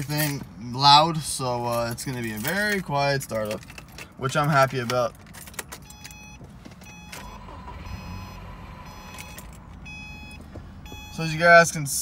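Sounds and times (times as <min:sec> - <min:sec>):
car engine starting and idling: 0:03.5 - 0:12.0
short high beeps: 0:05.9 - 0:11.3.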